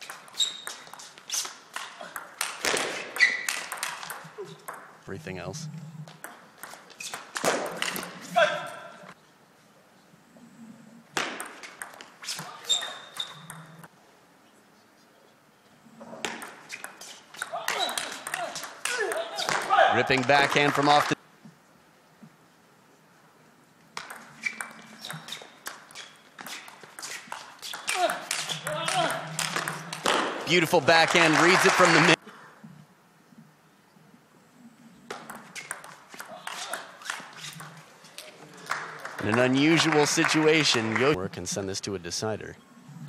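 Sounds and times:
person shouting: 27.9 - 29.3.

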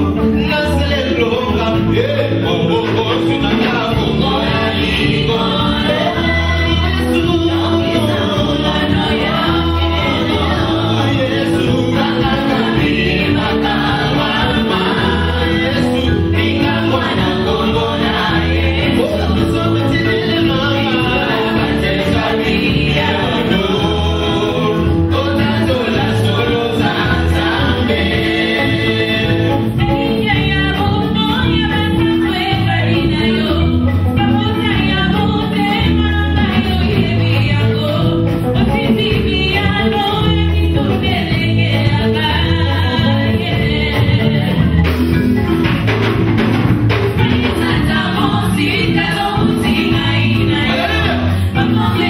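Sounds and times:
electric guitar: 0.0 - 52.0
group singing gospel: 0.0 - 52.0
low bass notes: 0.0 - 52.0.

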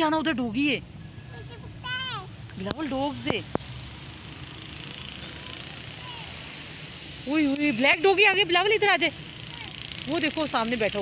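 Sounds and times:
outdoor hiss: 3.1 - 9.7.

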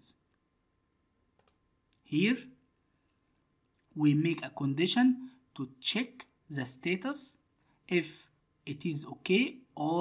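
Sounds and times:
computer mouse clicks: 1.3 - 2.0.

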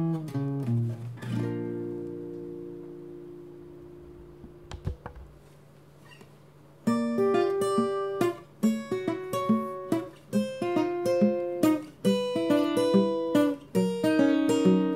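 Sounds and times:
plucked acoustic string instrument: 6.9 - 14.9.

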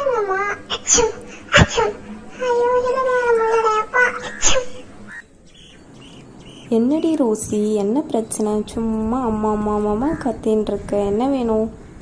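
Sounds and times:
faint outdoor background: 0.0 - 12.0
high wailing voice: 2.3 - 5.2
bird chirp: 4.1 - 7.5.

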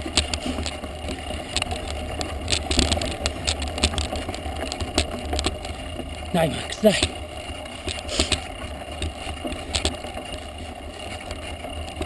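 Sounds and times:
bike clicks and rattles: 0.0 - 12.0
bike tyres crunching on gravel: 0.0 - 12.0.

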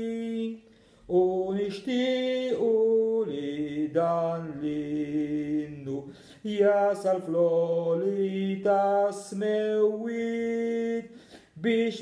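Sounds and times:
man singing a hymn: 0.0 - 12.0.

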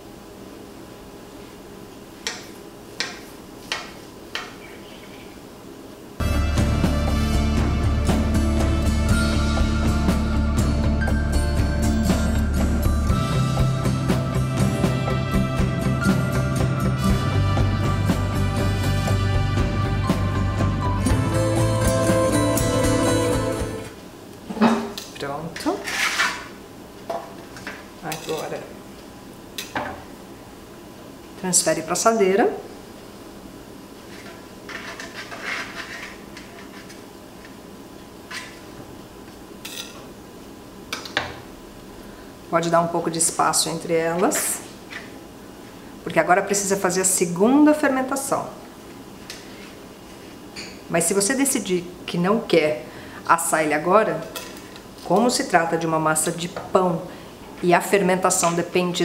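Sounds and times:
background music: 6.2 - 24.0.

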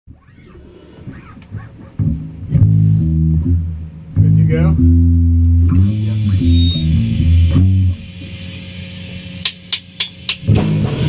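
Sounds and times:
electric guitar low notes: 0.1 - 11.0.

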